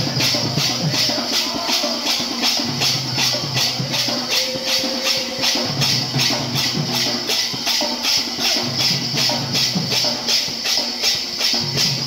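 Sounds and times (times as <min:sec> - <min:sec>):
barrel drum: 0:00.0 - 0:12.0
hand cymbals clashing: 0:00.0 - 0:12.0.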